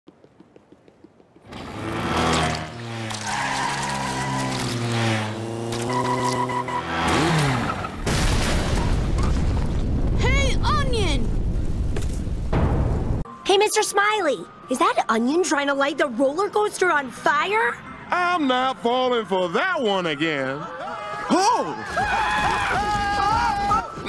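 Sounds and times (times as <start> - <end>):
explosion and fire rumble: 8.0 - 13.2.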